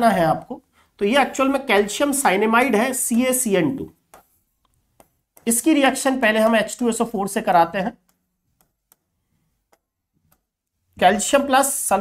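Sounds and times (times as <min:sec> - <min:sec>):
marker tapping whiteboard: 0:04.0 - 0:06.8, 0:07.8 - 0:10.7.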